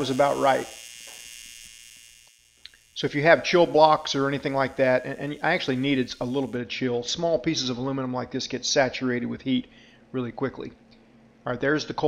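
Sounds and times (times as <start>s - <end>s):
welding arc buzzing: 0.0s - 6.6s.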